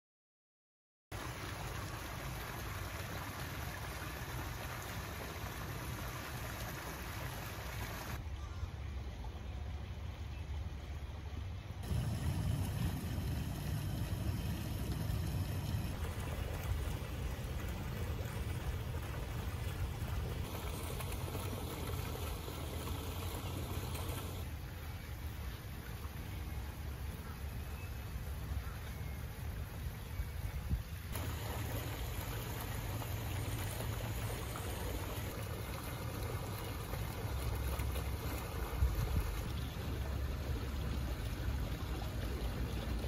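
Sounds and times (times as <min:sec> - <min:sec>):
low outdoor rumble: 0:08.1 - 0:28.8, 0:30.9 - 0:43.0
wind rumbling on microphone: 0:11.8 - 0:22.7, 0:38.5 - 0:39.5.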